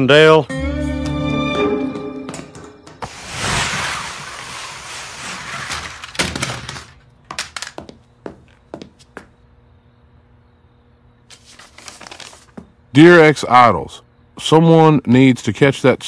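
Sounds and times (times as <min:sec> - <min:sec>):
loud rushing noise: 0:03.0 - 0:05.5.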